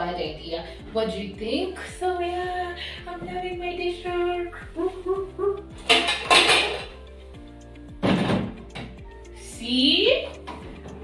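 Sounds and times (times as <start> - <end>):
background music: 0.0 - 11.0
dishes clinking and clattering: 5.8 - 7.0.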